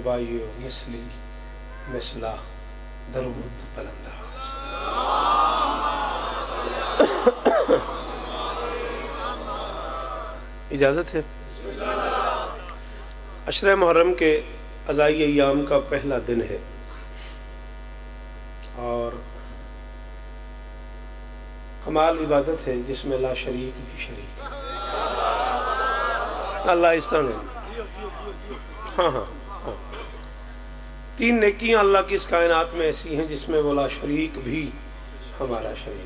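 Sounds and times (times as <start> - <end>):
electrical mains hum: 0.0 - 36.0
man speaking: 26.6 - 30.0.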